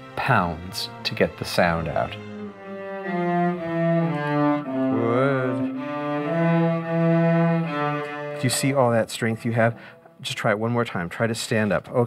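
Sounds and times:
cellos bowing long notes: 0.0s - 10.2s.

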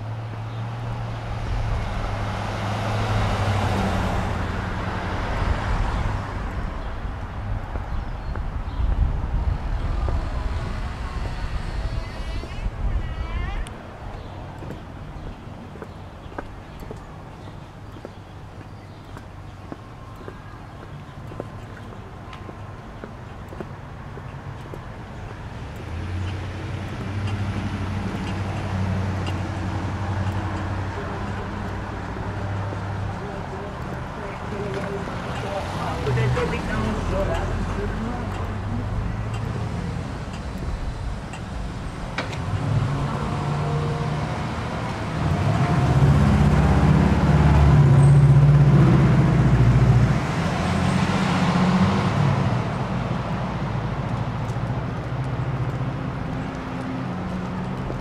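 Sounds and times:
cars driving past: 0.0s - 13.0s, 13.6s - 58.0s
engine humming: 0.0s - 58.0s.

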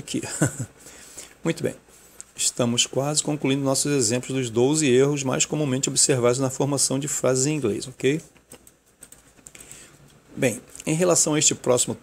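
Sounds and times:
person speaking: 0.0s - 0.8s, 1.4s - 12.0s
faint irregular clicks: 8.3s - 10.9s.

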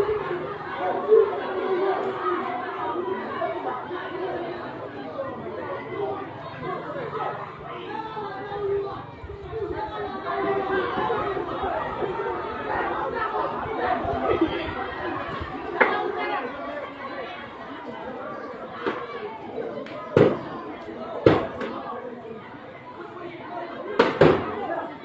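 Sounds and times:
chatter of several voices: 0.0s - 25.0s.

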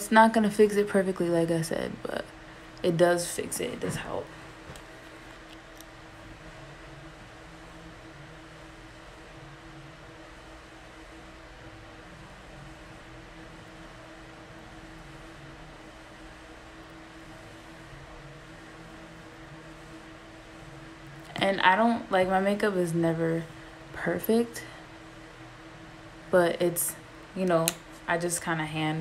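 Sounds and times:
room tone hum and hiss: 0.0s - 29.0s.

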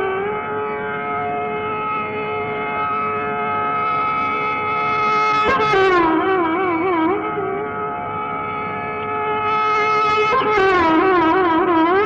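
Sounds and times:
classical music long held note: 0.0s - 12.0s.

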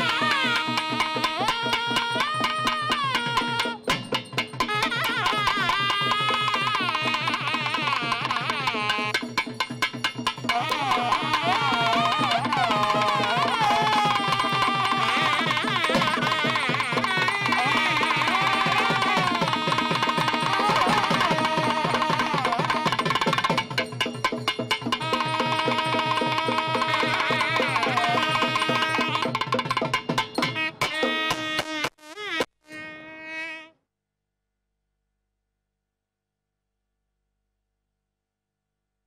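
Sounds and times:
buzzy reed wind instrument: 0.0s - 4.0s, 4.6s - 9.6s, 10.4s - 23.6s, 24.9s - 33.8s
quick drum pattern: 0.0s - 31.7s
buzzy reed pipe: 30.4s - 33.8s.

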